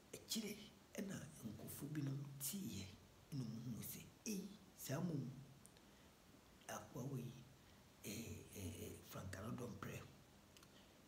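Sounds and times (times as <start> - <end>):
man speaking quietly: 0.2 - 5.4, 6.7 - 10.2.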